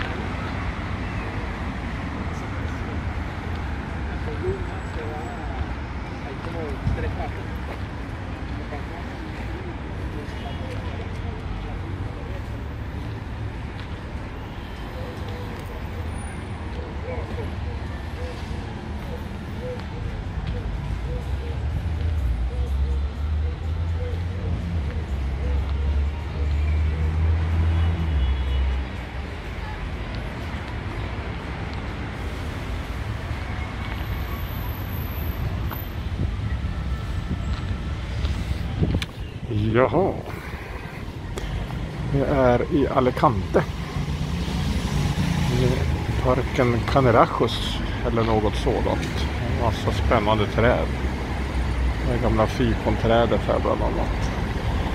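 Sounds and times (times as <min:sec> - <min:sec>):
city traffic rumble: 0:00.0 - 0:54.9
wind noise on microphone: 0:35.4 - 0:39.5.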